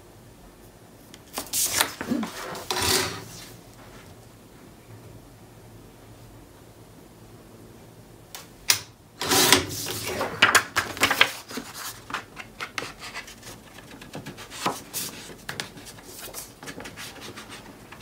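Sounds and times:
paper rustling and scraping: 0:01.3 - 0:03.6, 0:09.2 - 0:18.0.

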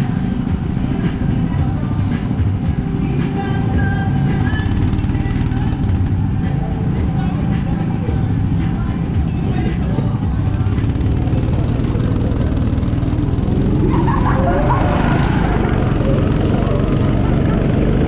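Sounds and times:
go-kart engine running: 0:00.0 - 0:18.0.

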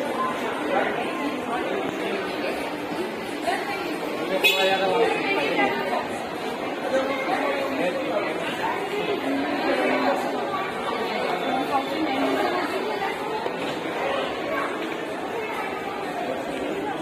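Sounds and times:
indistinct chatter of many people: 0:00.0 - 0:17.0.

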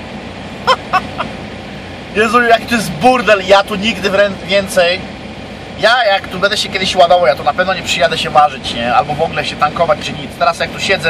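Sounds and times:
trucks idling: 0:00.0 - 0:11.0.

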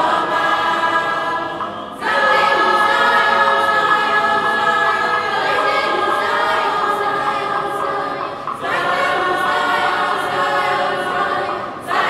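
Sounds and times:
children's choir singing unaccompanied: 0:00.0 - 0:12.0.

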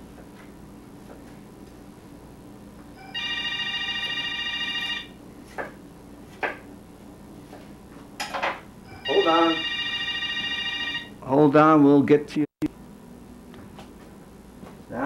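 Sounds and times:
telephone warbling ring: 0:03.0 - 0:05.2, 0:08.9 - 0:11.2.

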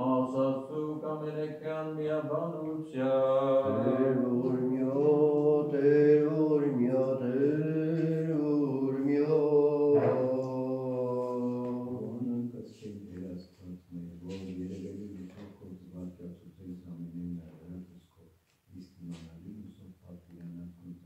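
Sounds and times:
man chanting a hymn: 0:00.0 - 0:21.0.

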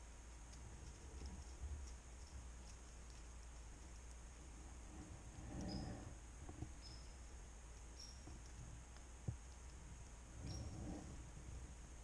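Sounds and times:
soft rustle of movement: 0:00.0 - 0:12.0
faint high chirps: 0:05.6 - 0:06.0, 0:06.8 - 0:07.3, 0:07.9 - 0:08.4.

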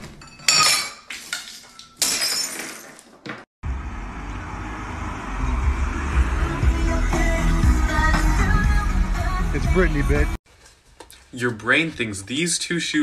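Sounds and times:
glass and dishes shattering: 0:00.0 - 0:03.2.

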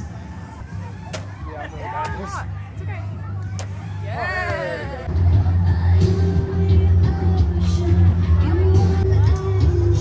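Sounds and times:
music with heavy bass: 0:03.7 - 0:10.0.

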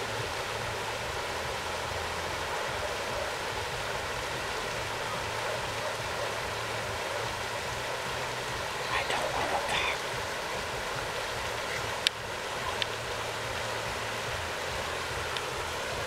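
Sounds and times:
steady rushing noise: 0:00.0 - 0:16.0.

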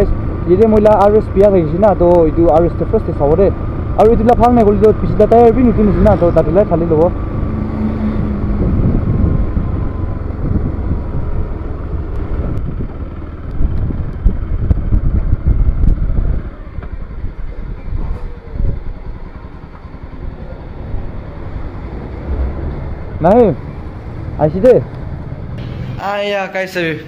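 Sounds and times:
motorcycle engine running: 0:00.0 - 0:26.0
road and wind noise: 0:00.0 - 0:27.0.

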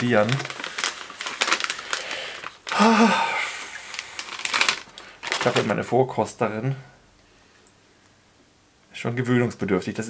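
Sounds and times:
plastic packet crackling: 0:00.0 - 0:05.9
person grunting: 0:02.7 - 0:03.9.

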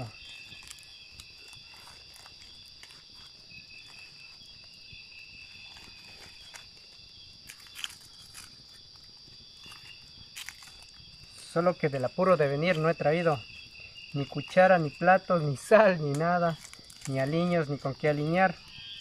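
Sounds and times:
campfire crackling: 0:00.0 - 0:19.0
crickets chirping: 0:00.0 - 0:19.0
leaves rustling: 0:00.0 - 0:19.0.

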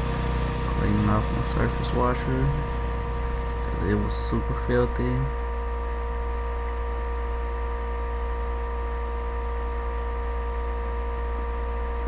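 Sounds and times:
steady multi-tone hum: 0:00.0 - 0:12.0.

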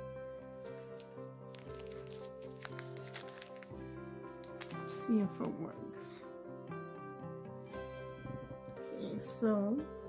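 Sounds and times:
soft electronic song: 0:00.0 - 0:10.0.

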